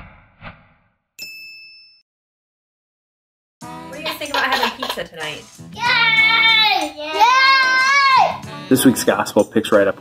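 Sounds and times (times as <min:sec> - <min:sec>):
bright bell-like ding: 0:01.2 - 0:02.0.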